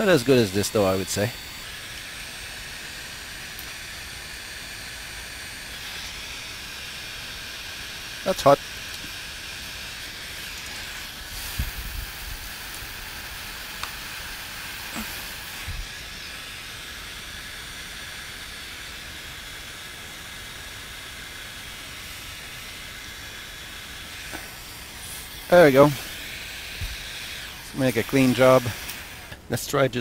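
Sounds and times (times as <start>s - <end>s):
heat gun fan hiss: 0.0s - 30.0s.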